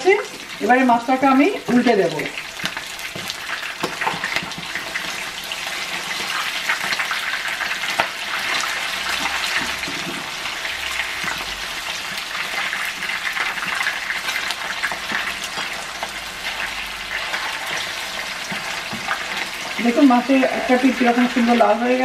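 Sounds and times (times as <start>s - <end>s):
fish sizzling in hot oil: 0.0s - 22.0s
spatula turning food in pan: 0.0s - 22.0s.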